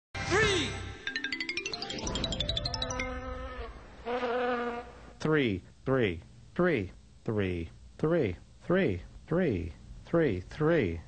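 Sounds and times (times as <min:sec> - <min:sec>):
buzzing hummed note: 0:02.1 - 0:04.6.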